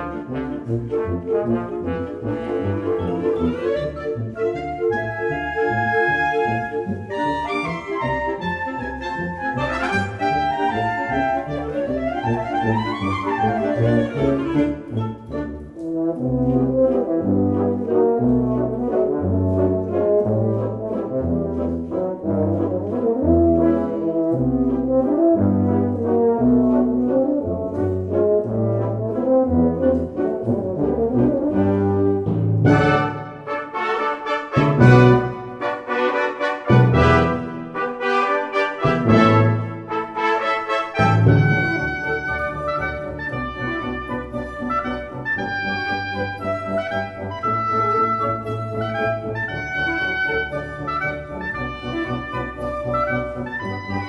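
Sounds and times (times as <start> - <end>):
concert band playing brass passage: 28.7 - 43.2.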